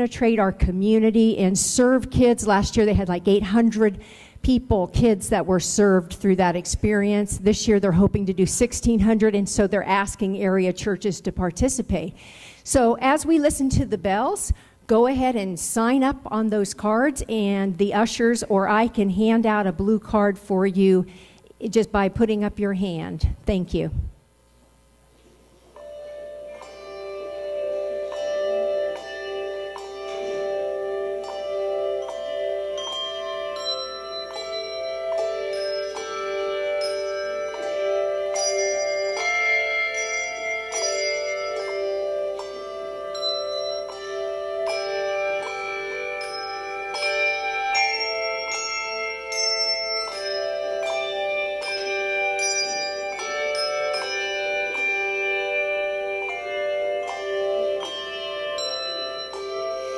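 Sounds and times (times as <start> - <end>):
handbell choir playing chords: 25.7 - 59.9.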